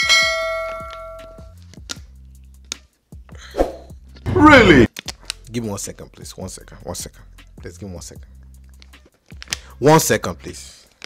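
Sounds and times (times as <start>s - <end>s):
bell-like ding: 0.0s - 1.4s.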